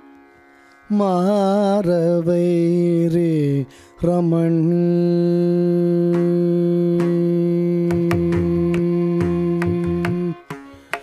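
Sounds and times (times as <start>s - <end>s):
man singing: 0.9s - 10.6s
violin accompaniment: 7.0s - 11.0s.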